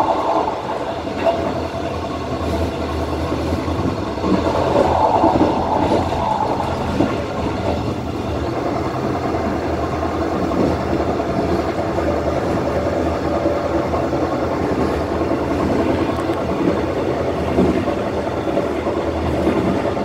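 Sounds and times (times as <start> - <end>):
train wheels rumbling on rail: 0.0 - 20.0.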